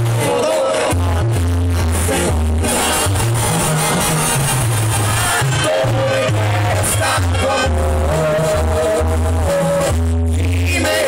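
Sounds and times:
tuba bass line: 0.0s - 11.0s.

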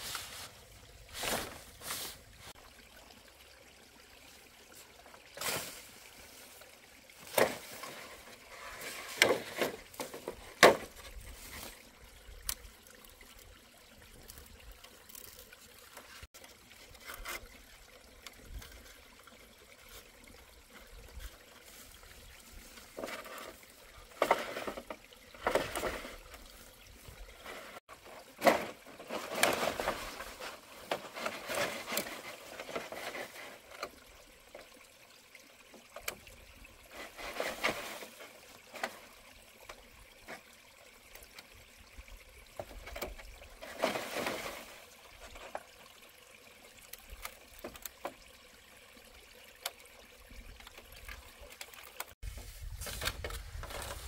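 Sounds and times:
bamboo strips rustling and scraping: 0.0s - 2.6s, 4.7s - 12.0s, 14.2s - 17.7s, 20.7s - 34.1s, 36.9s - 40.4s, 42.6s - 45.8s, 50.6s - 54.0s.

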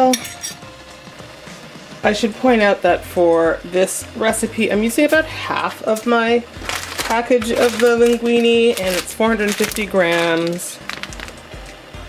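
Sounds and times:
spoon clinking on metal pot: 0.0s - 0.6s.

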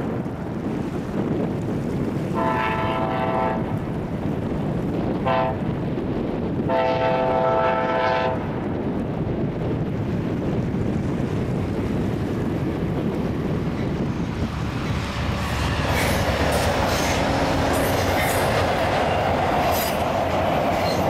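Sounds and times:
diesel train on steel bridge: 0.0s - 21.0s
train wheels clacking over rail joints: 14.6s - 21.0s.

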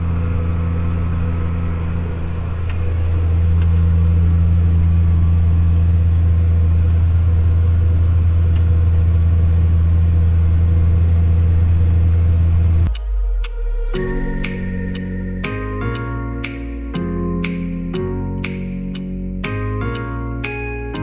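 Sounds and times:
tractor diesel engine droning: 0.0s - 21.0s.

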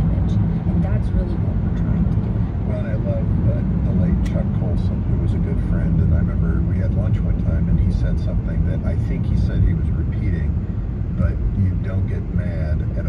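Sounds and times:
car road and engine rumble: 0.0s - 13.0s.

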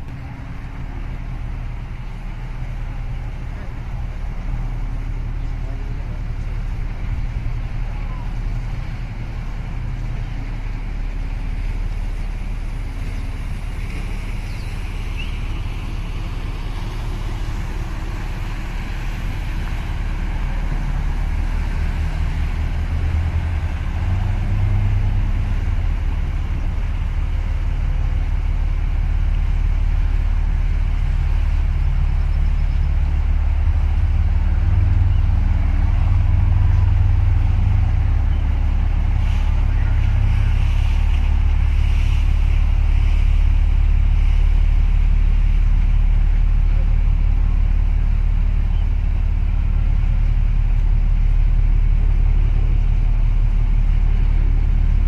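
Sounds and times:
ship engine rumble: 0.0s - 55.0s.

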